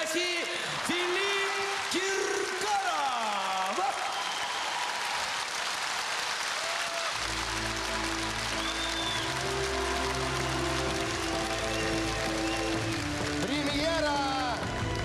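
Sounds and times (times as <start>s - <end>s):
audience applauding: 0.0s - 15.0s.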